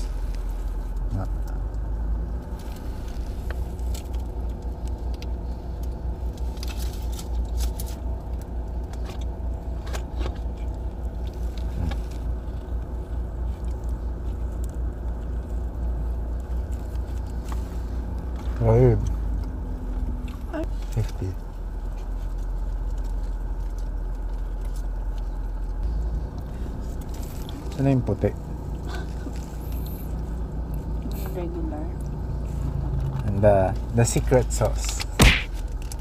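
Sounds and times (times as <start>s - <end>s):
car cabin rumble: 0.0s - 36.0s.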